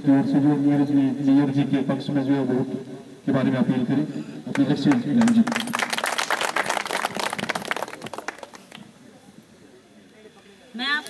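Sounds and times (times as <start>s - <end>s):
crowd applauding: 4.6s - 8.9s.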